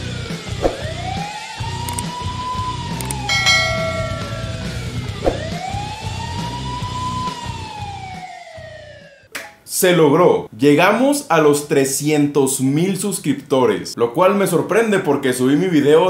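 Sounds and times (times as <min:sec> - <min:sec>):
wailing siren: 0:00.8 - 0:03.4, 0:05.4 - 0:09.3
short bell-like chime: 0:03.3 - 0:05.2.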